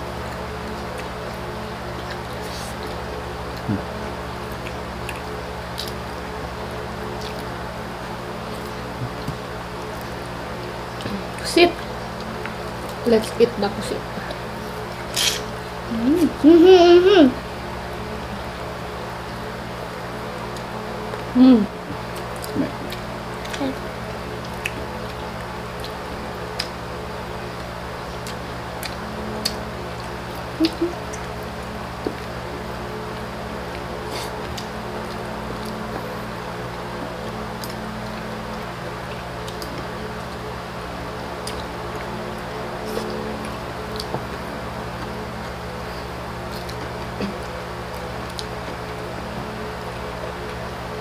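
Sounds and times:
background hum: 0:00.0 - 0:51.0
clicks and smacks of eating: 0:00.3 - 0:01.2, 0:04.5 - 0:06.1, 0:07.2 - 0:07.5, 0:21.9 - 0:23.6, 0:24.3 - 0:26.8, 0:27.5 - 0:31.4, 0:33.1 - 0:36.0, 0:36.7 - 0:40.4, 0:41.4 - 0:45.6, 0:46.5 - 0:49.4
person humming: 0:03.6 - 0:04.0, 0:15.2 - 0:17.4, 0:21.3 - 0:21.8, 0:30.6 - 0:31.0.

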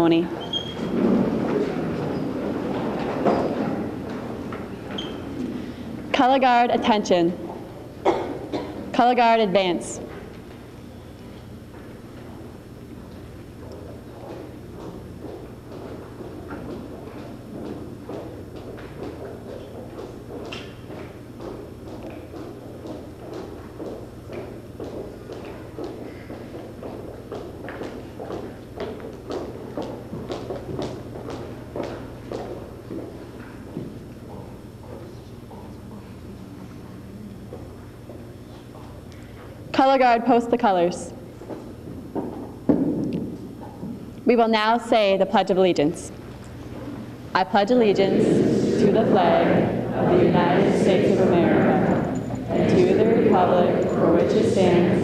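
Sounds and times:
crowd murmur and shuffling: 0:00.0 - 0:39.9, 0:45.6 - 0:55.0
steady low hum: 0:00.0 - 0:55.0
chairs scraping on floor: 0:00.3 - 0:05.8, 0:47.7 - 0:55.0
short squeaks: 0:00.4 - 0:00.9.

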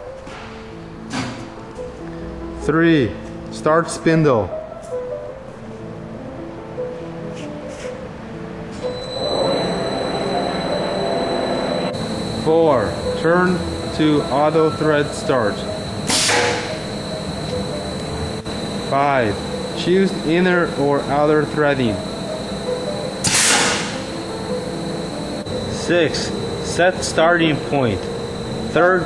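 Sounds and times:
lathe spindle whining: 0:08.8 - 0:29.0.

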